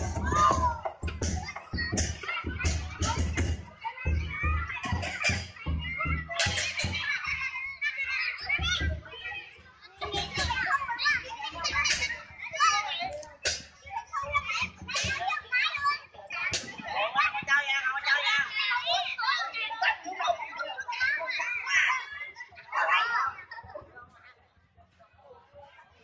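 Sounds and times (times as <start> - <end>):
drum beating fast rhythm: 0.0 - 18.8
children shouting and chattering: 0.0 - 26.0.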